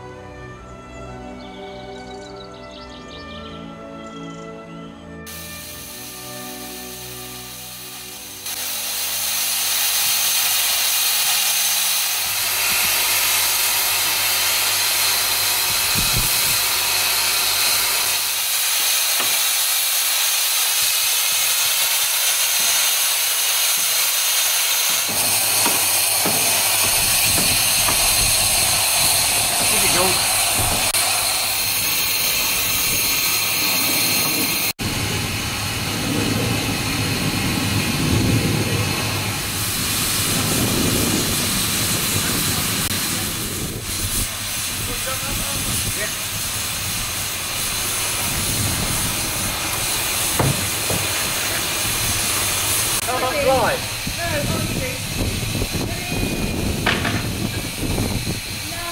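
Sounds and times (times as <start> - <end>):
steam hissing from boiler: 5.3 - 58.9.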